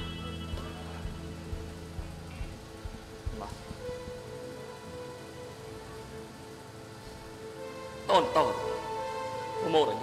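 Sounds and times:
constant hiss: 0:00.0 - 0:10.0
faint background music: 0:00.0 - 0:10.0.

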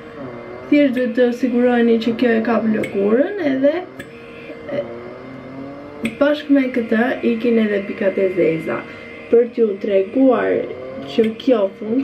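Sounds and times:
small electric vacuum motor hum: 0:00.0 - 0:12.0.

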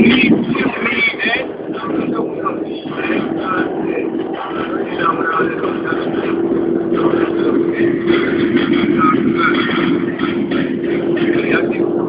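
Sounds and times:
car engine droning: 0:00.0 - 0:12.0
road noise: 0:00.0 - 0:12.0.

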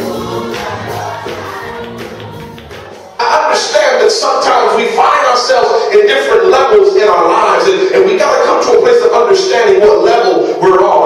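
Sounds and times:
gospel choir singing: 0:00.0 - 0:03.8
hand claps: 0:00.4 - 0:03.1.

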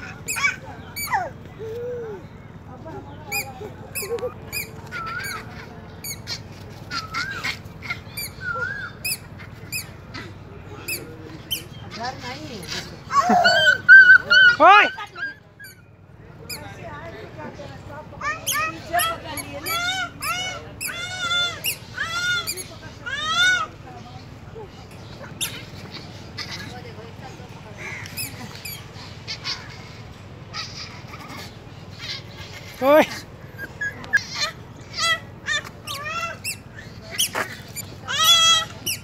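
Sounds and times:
small animal squeaks: 0:00.0 - 0:01.3, 0:03.2 - 0:12.8, 0:13.5 - 0:15.9, 0:18.3 - 0:23.7, 0:24.9 - 0:26.9, 0:27.8 - 0:39.0
puppy yelp: 0:00.0 - 0:01.8, 0:03.3 - 0:09.9, 0:13.1 - 0:15.9, 0:18.2 - 0:23.7, 0:28.2 - 0:39.0
puppies whining: 0:00.0 - 0:17.2, 0:18.2 - 0:39.0.

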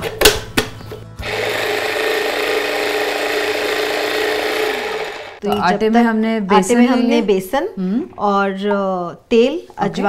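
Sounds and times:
kitchen appliance motor humming: 0:01.2 - 0:05.4.

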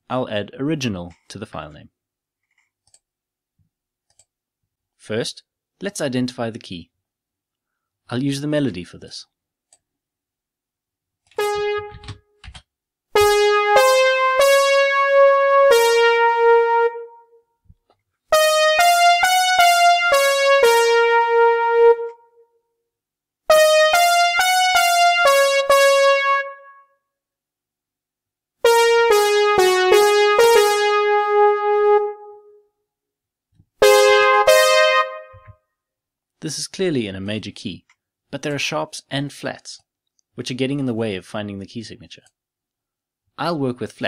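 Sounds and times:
keyboard melody playback: 0:11.3 - 0:12.2, 0:13.2 - 0:17.5, 0:18.3 - 0:22.6, 0:23.5 - 0:27.0, 0:28.6 - 0:32.7, 0:33.8 - 0:35.6.

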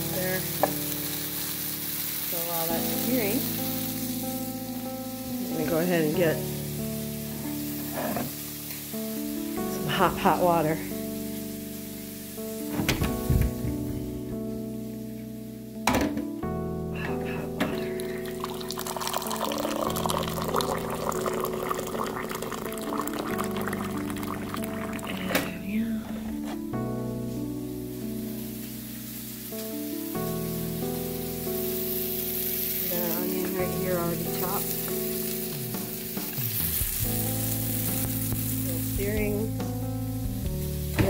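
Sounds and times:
background music: 0:00.0 - 0:41.0
water running into cup: 0:17.6 - 0:25.6.

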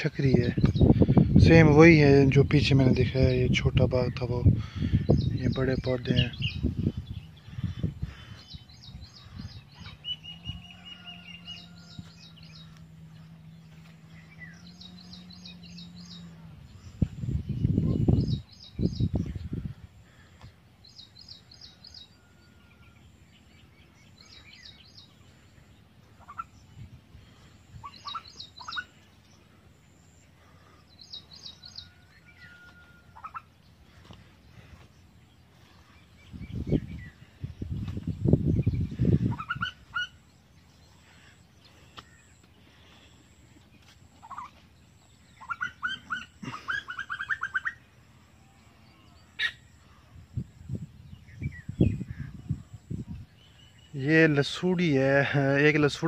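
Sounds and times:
birds chirping: 0:00.0 - 0:56.0
lower bird calls: 0:04.0 - 0:56.0.

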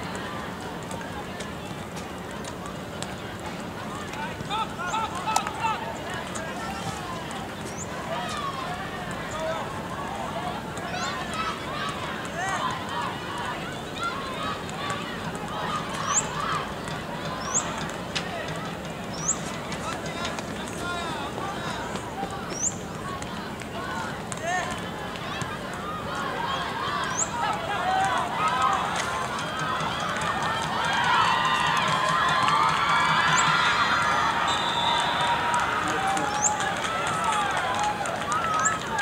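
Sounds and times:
distant voices shouting: 0:03.0 - 0:39.0.

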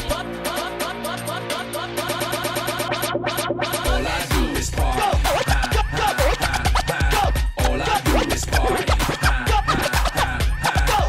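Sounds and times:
hip-hop break with kick beat: 0:00.0 - 0:11.0
turntable scratching: 0:00.0 - 0:11.0.

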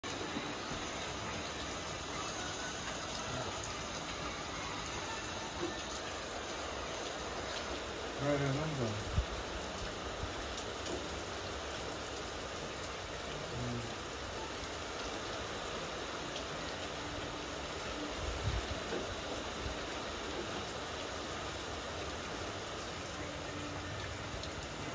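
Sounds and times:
rain on pavement and metal roofs: 0:00.0 - 0:24.9.

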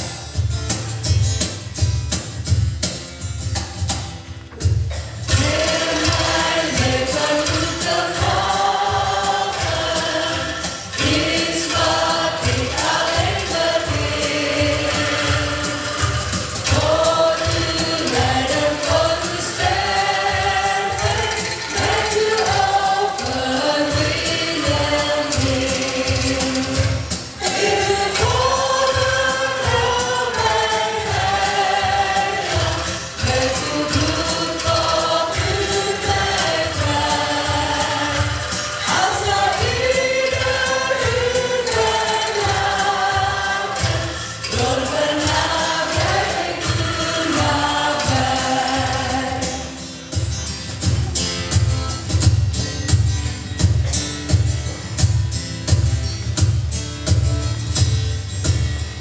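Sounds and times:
rhythmic angklung: 0:00.0 - 0:59.0
congregation singing: 0:04.9 - 0:50.3
women singing a hymn: 0:05.3 - 0:49.8.

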